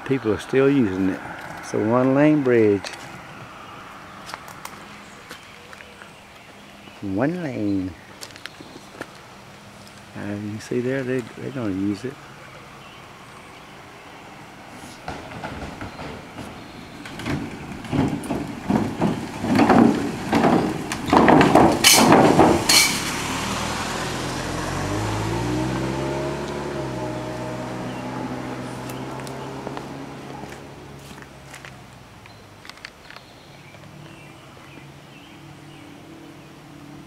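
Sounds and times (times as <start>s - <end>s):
car engine hum: 0.0s - 7.0s, 7.8s - 37.0s
wooden boards clattering under tyres: 15.0s - 33.1s.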